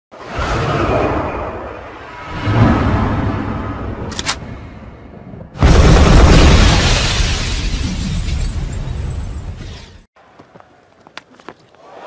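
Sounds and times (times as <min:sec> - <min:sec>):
deep rumbling whoosh: 0:00.4 - 0:05.6.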